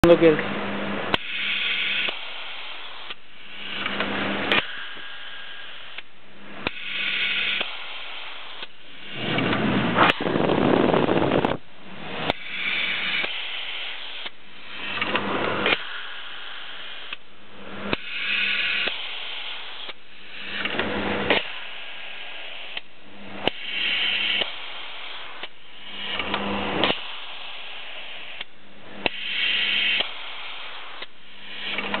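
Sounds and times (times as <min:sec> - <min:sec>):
steady low hum: 0:00.0 - 0:32.0
sharp mechanical clicks: 0:01.1 - 0:02.3, 0:05.8 - 0:07.8, 0:12.2 - 0:16.0, 0:22.7 - 0:27.2, 0:28.4 - 0:32.0
pneumatic air bursts: 0:01.1 - 0:32.0
label applicator machine cycling: 0:25.1 - 0:27.1.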